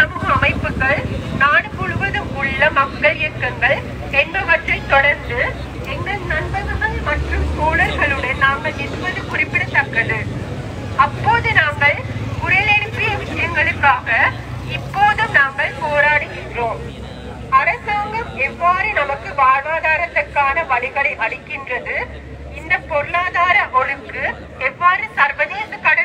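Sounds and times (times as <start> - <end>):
low engine rumble: 0.0 - 25.8
woman speaking through megaphone: 0.0 - 26.0.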